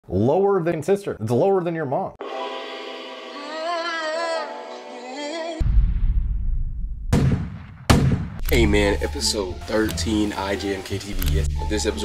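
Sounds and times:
sharp bangs: 5.6s - 8.5s.

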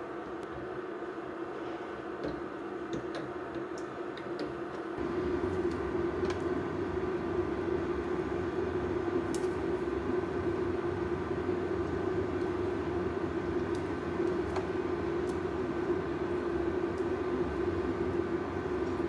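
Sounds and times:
stove rumbling hum: 0.0s - 19.0s.

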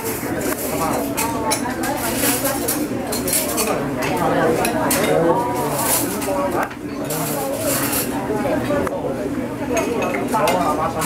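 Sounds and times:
dishes and cutlery clinking: 0.0s - 8.2s, 9.7s - 11.0s.

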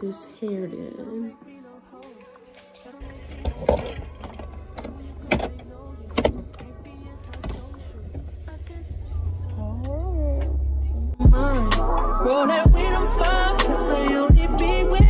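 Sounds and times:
song with singing: 0.0s - 15.0s
car cabin rumble: 3.0s - 11.4s.

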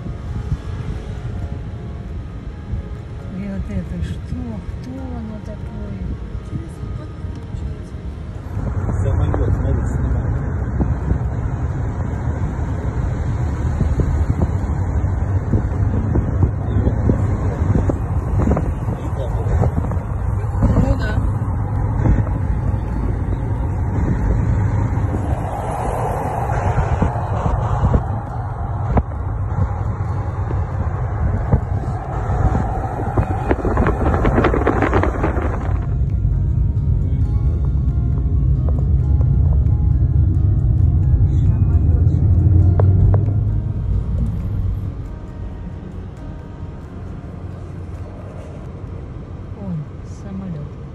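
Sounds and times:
road and wind noise in car: 0.0s - 50.9s.

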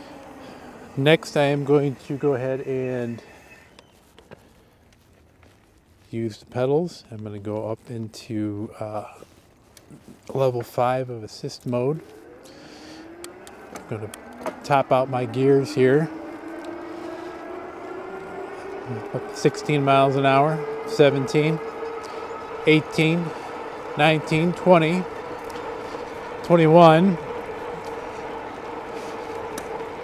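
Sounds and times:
electric motor whining: 0.0s - 4.3s, 11.4s - 30.0s
tyre noise: 0.0s - 30.0s.

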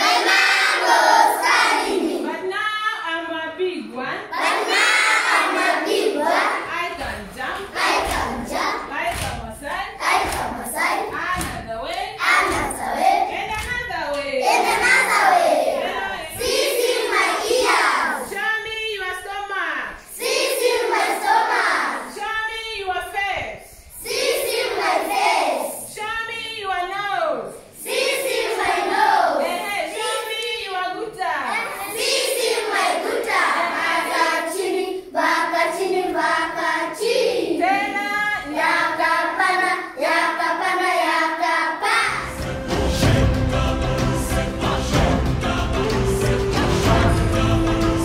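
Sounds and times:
children singing in unison: 0.0s - 2.3s, 4.3s - 6.7s, 7.5s - 8.9s, 10.0s - 11.5s, 12.1s - 13.3s, 14.5s - 18.3s, 20.1s - 22.2s, 24.0s - 25.9s, 27.7s - 29.6s, 31.5s - 48.0s.

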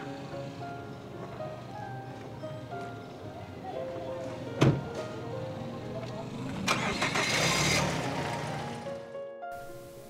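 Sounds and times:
car engine starting and running: 5.8s - 9.0s.

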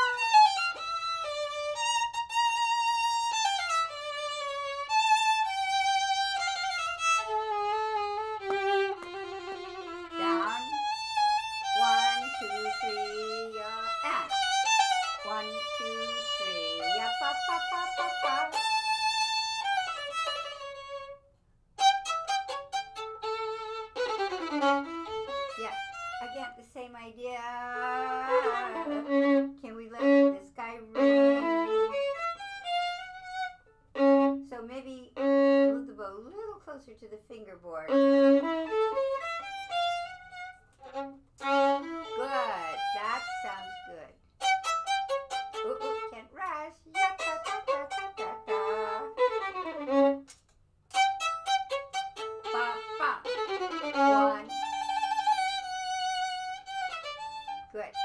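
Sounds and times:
solo violin with vibrato: 0.0s - 26.6s, 27.6s - 36.0s, 37.8s - 46.3s, 46.9s - 58.0s.

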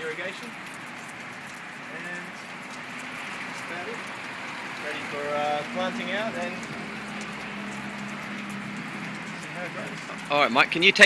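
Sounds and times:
falling water drops ticking: 0.0s - 11.0s
water spraying and splashing: 0.0s - 11.0s.

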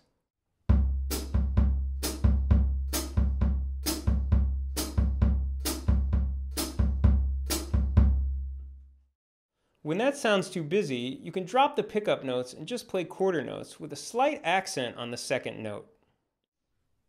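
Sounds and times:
soft bass drum: 0.7s - 8.3s.

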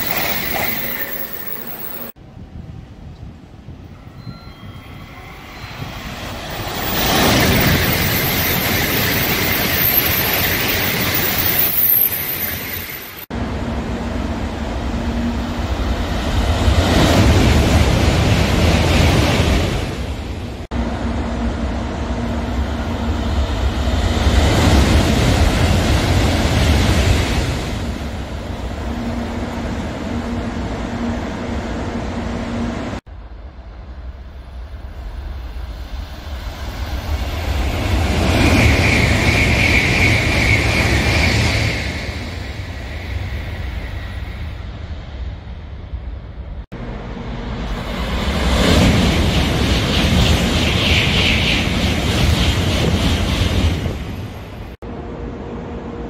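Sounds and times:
high-speed train passing: 0.0s - 56.0s.

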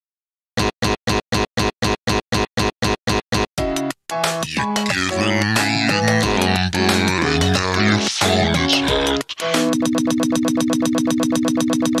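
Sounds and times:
electronic stutter loop: 4.4s - 12.0s.

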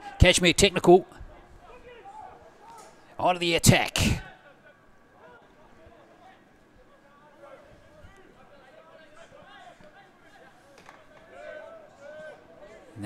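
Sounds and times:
distant people shouting: 4.2s - 13.0s.

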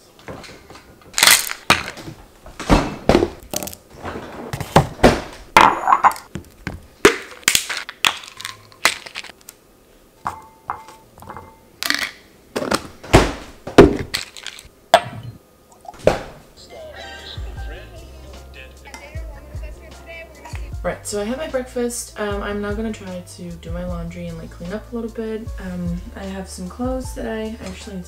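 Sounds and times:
objects knocking on stone countertop: 5.6s - 6.8s
glass clink ringing: 10.3s - 11.7s.

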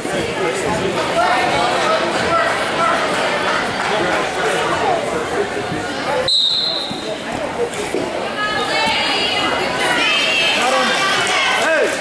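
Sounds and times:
crowd chatter: 0.0s - 12.0s
referee's whistle blast: 6.3s - 7.1s.

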